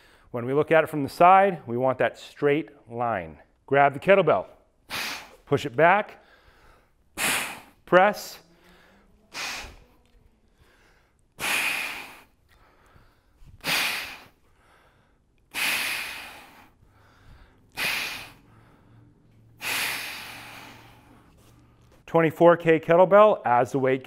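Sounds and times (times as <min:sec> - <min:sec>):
man breathing forcefully: 0:00.0 - 0:00.3, 0:04.8 - 0:05.5, 0:06.1 - 0:21.9.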